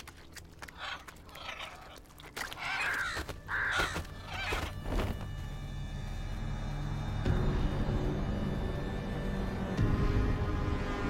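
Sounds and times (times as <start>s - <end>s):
crows cawing: 0.7s - 4.8s.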